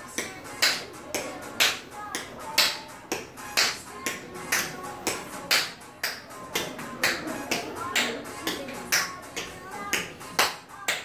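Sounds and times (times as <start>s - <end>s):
recorded music: 0.0s - 11.0s.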